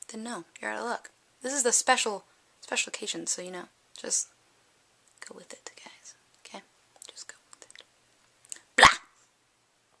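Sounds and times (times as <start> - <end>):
whispering and mouth noises: 5.2 - 7.9.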